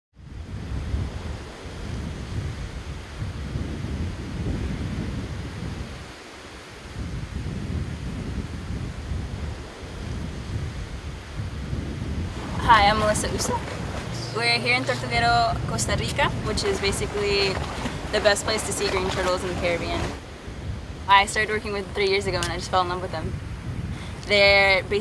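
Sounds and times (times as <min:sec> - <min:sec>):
wind buffeting microphone: 0:00.2 - 0:25.0
surf washing onto beach: 0:00.4 - 0:25.0.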